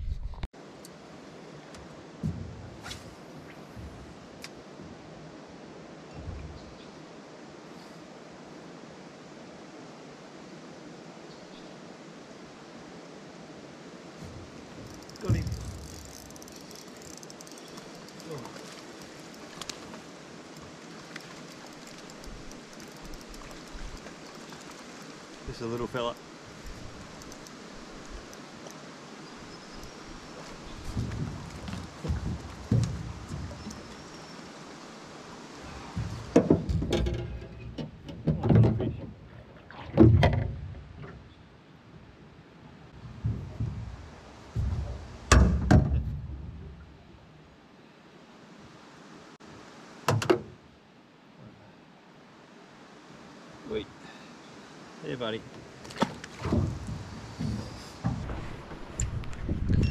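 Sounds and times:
thuds against metal boat: 0:36.0 - 0:39.2, 0:43.1 - 0:46.2.

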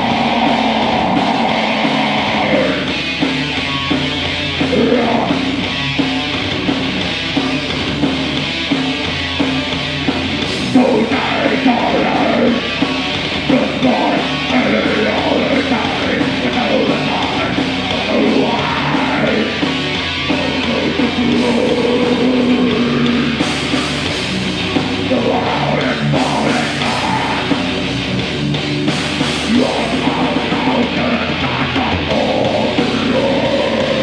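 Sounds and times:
person singing into a microphone: 0:00.0 - 0:02.9, 0:04.7 - 0:05.4, 0:10.7 - 0:12.8, 0:13.5 - 0:19.6, 0:20.4 - 0:23.4, 0:25.1 - 0:27.7, 0:29.4 - 0:34.0
distorted electric guitars: 0:00.0 - 0:34.0
drum kit: 0:00.0 - 0:34.0.

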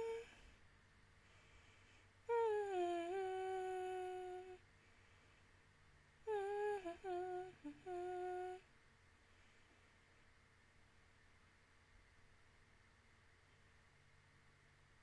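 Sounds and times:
woman humming: 0:00.0 - 0:00.5, 0:02.3 - 0:04.6, 0:06.2 - 0:08.7.

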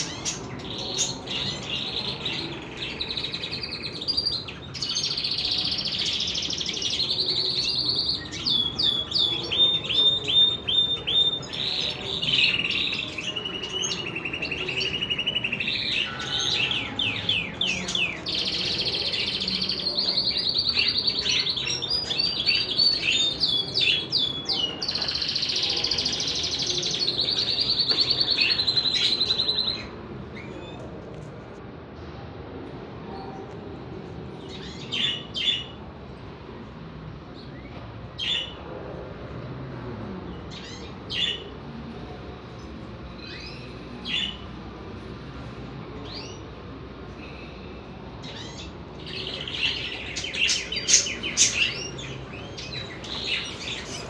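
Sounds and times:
songbird trilling and chirping: 0:00.0 - 0:30.8, 0:48.2 - 0:54.0.

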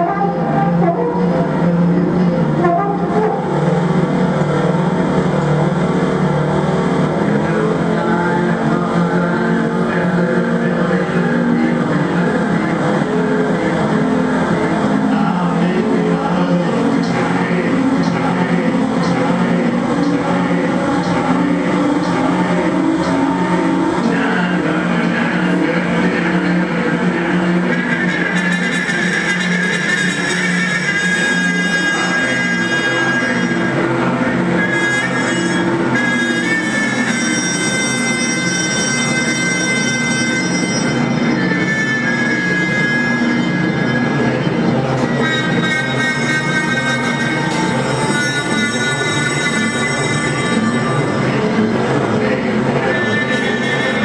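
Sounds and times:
dense drone of overlapping tones: 0:00.0 - 0:54.0.

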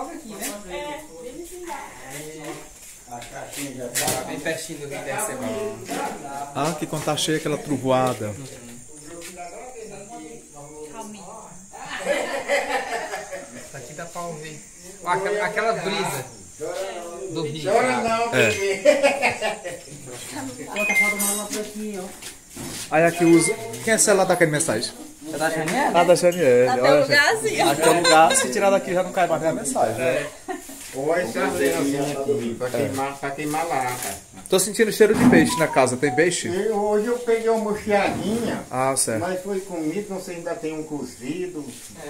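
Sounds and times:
people talking: 0:00.0 - 0:22.2, 0:23.0 - 0:30.4, 0:31.0 - 0:42.0.

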